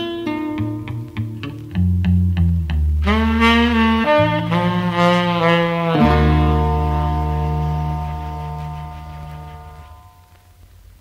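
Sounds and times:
held chord saxophone and strings: 2.9 - 10.4.

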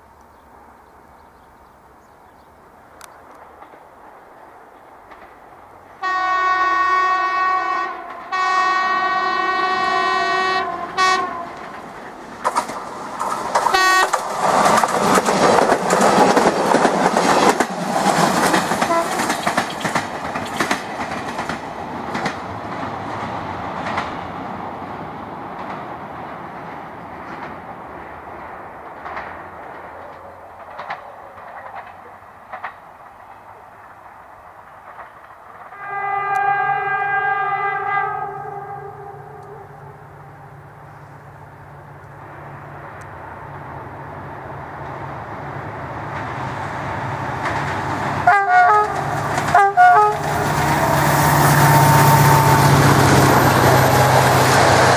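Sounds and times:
train rumbling over bridge: 0.0 - 54.9
wheels clicking over rail joints: 2.9 - 6.0, 10.8 - 24.4, 25.5 - 36.6, 44.8 - 51.6
train horn blasts: 6.0 - 11.6, 13.6 - 14.2, 18.8 - 19.3, 35.7 - 40.4, 48.2 - 53.2.

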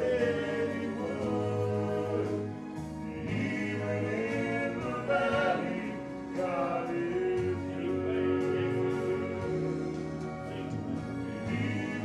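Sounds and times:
male quartet singing in harmony: 0.0 - 12.0.

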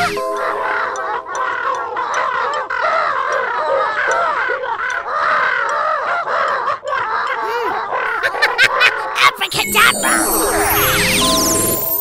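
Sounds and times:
squeaky cartoon voices chattering: 8.9 - 12.0.

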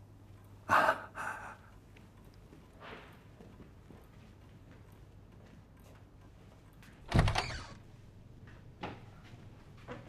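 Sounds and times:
person breathing: 0.7 - 1.8.

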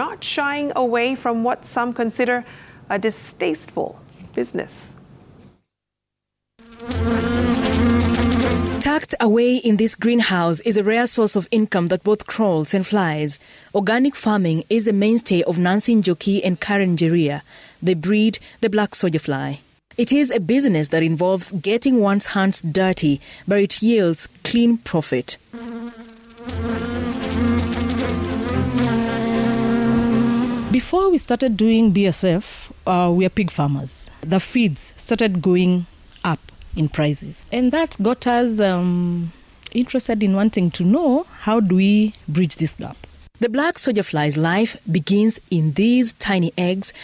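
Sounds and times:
flies buzzing: 6.6 - 9.0, 25.5 - 30.8.

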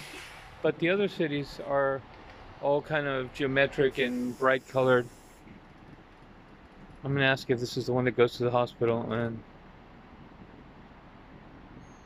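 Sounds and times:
faint outdoor ambience hiss: 0.0 - 12.0.

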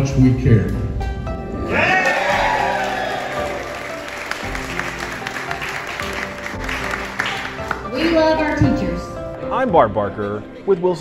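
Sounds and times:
background music: 0.0 - 11.0
audience applause: 1.7 - 8.4.

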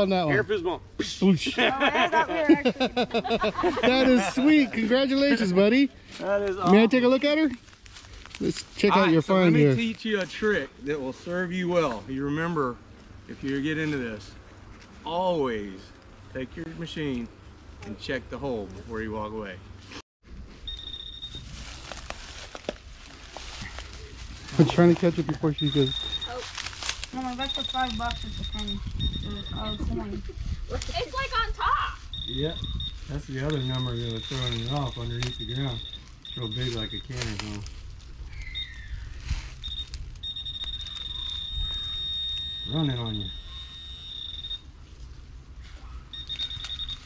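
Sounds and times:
metal detector beep: 20.6 - 21.6, 24.5 - 26.5, 27.2 - 30.2, 32.1 - 37.4, 38.4 - 38.8, 39.6 - 44.7, 46.1 - 47.0.

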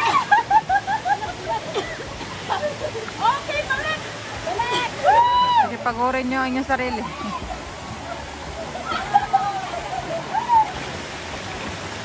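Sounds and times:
waterfall rushing water: 0.0 - 12.0.

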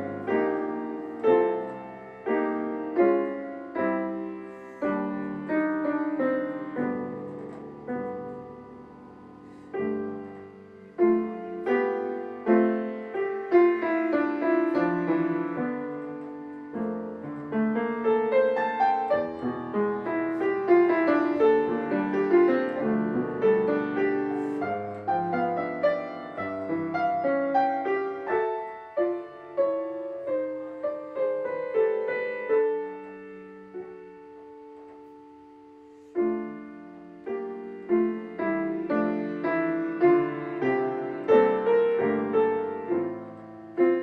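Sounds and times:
solo grand piano: 0.0 - 44.0.

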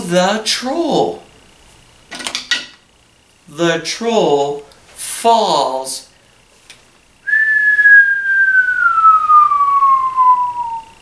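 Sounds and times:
person whistling falling note: 7.3 - 11.0.

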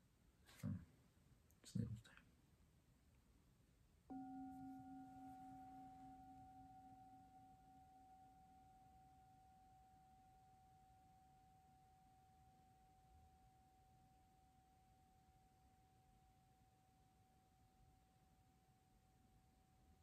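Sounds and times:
singing bowl ringing: 4.1 - 16.0.

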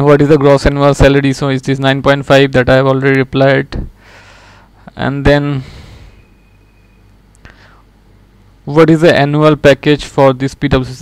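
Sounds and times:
low room tone hum: 0.0 - 11.0
short breathy sound: 5.5 - 6.6, 7.4 - 8.0.

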